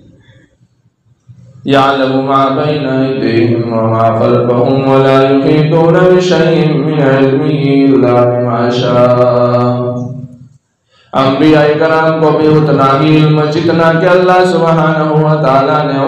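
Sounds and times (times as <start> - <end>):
man chanting melodically: 1.2 - 16.0.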